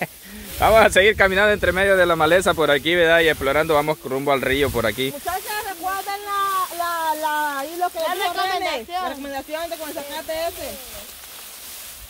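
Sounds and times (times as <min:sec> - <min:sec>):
rustling through tall grass: 0:00.0 - 0:12.0.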